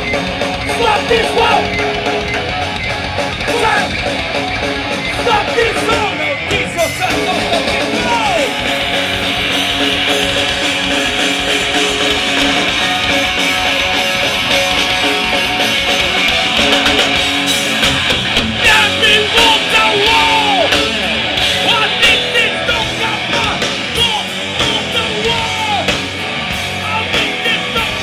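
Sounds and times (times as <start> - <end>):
rock band playing live: 0.0 - 28.0.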